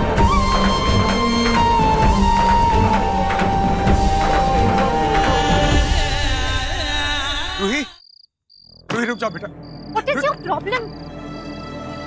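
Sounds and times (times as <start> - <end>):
song with singing voice: 4.6 - 8.0
crickets chirping: 4.7 - 11.6.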